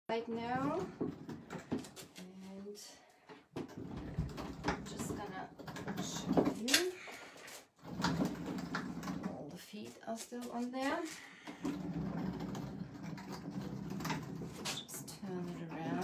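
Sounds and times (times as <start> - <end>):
wooden shelf scraping on surface: 3.7 - 9.4, 10.4 - 16.0.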